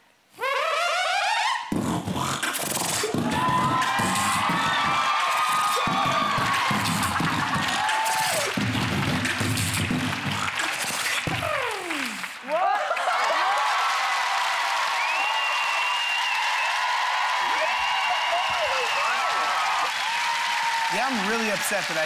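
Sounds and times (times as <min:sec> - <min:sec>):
boy beatboxing into microphone: 0:00.4 - 0:12.4.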